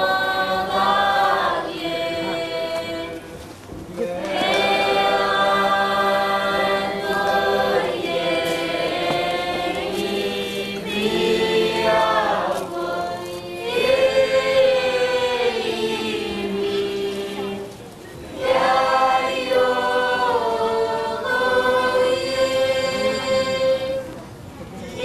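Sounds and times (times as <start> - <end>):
group singing in harmony: 0.0 - 24.2, 24.8 - 25.0.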